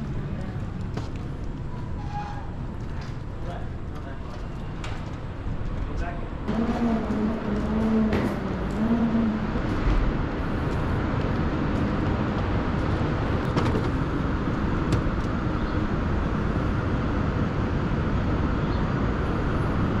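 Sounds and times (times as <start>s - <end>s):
road traffic rumble: 0.0s - 20.0s.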